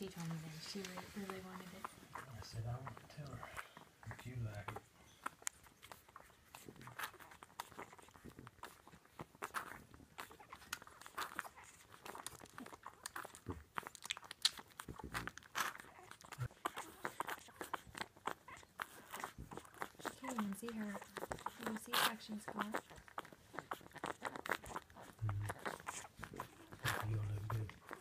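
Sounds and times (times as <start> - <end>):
puppies suckling: 0.0 - 28.0.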